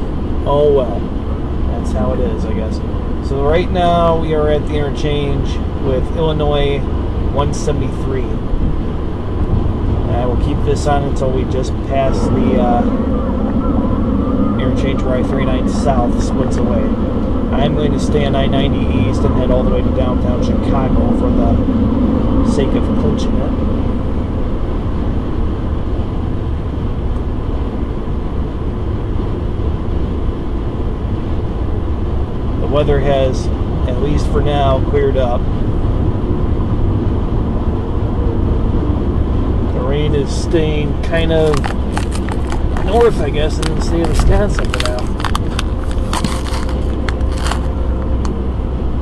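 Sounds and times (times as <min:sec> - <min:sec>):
car cabin road rumble: 0:00.0 - 0:49.0.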